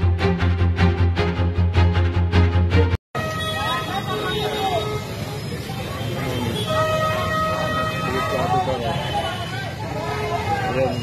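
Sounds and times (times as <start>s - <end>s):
street traffic: 0.0s - 11.0s
crowd shouting and talking: 3.2s - 11.0s.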